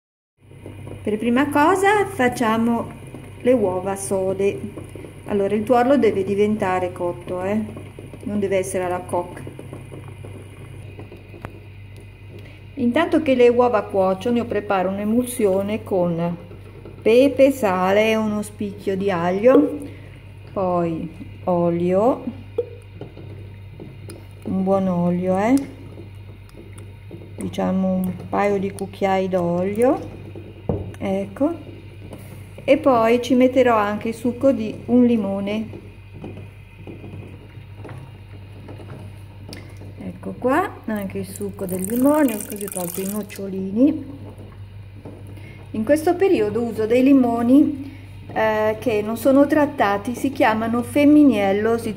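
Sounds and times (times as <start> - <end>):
steady low hum: 0.4 - 51.9
water boiling in a saucepan: 0.4 - 51.9.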